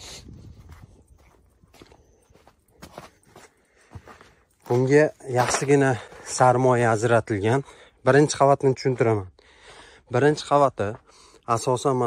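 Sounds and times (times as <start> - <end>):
faint footsteps on dirt: 0.1 - 7.1.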